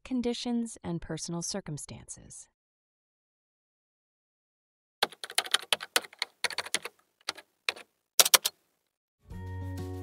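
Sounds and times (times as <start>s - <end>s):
keyboard key clicks: 5.0s - 8.6s.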